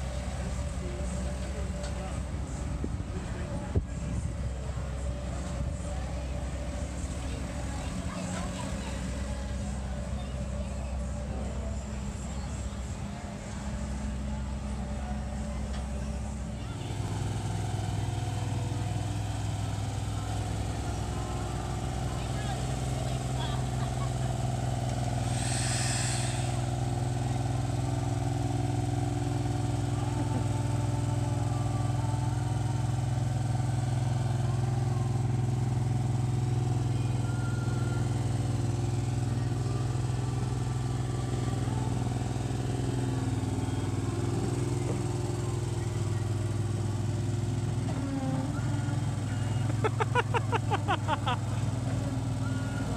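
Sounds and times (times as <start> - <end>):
roller engine running: 0.0 - 52.9
brief hiss: 25.2 - 26.7.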